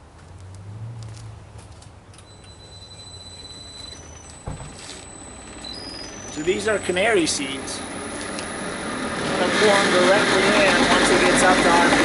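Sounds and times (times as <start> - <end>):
single thump: 4.4 - 4.8
motor humming with rising whine: 5.1 - 12.0.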